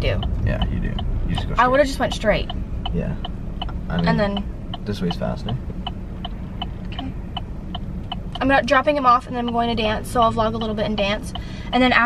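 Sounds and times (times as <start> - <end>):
car turn signal ticking: 0.0 - 12.0
road and engine rumble: 0.0 - 12.0.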